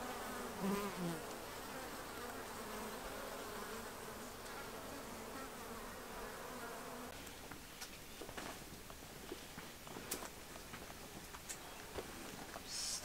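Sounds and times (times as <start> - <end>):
honeybees buzzing: 0.0 - 7.2.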